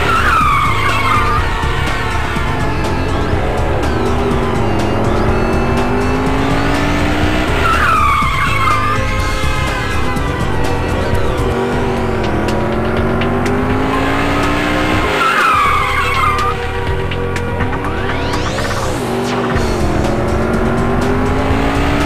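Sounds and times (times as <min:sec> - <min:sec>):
tyre screech: 0:00.0 - 0:16.7
engine revving: 0:00.0 - 0:22.0
soundtrack music: 0:00.0 - 0:22.0.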